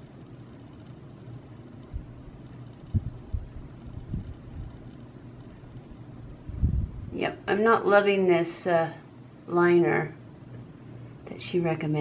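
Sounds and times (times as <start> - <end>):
steady low hum: 0.0 - 12.0
soft low thumps: 1.9 - 2.2, 2.8 - 4.8, 5.6 - 7.2.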